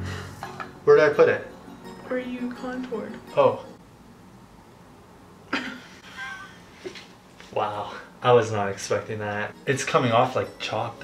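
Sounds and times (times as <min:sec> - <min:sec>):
short cough: 0:05.5 - 0:05.9.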